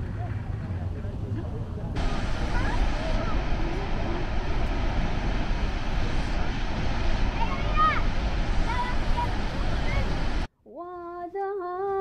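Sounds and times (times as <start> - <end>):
low outdoor rumble: 0.0 - 10.5.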